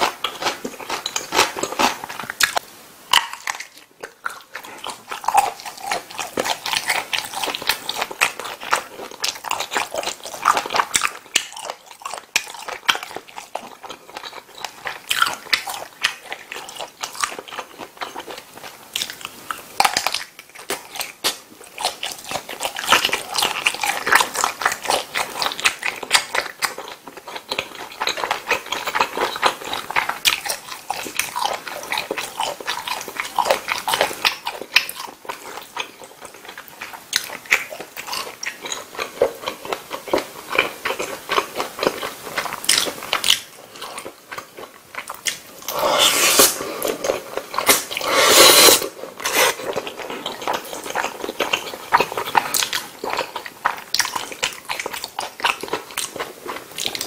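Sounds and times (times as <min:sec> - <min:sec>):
biting and chewing sausage: 0:00.0 - 0:57.0.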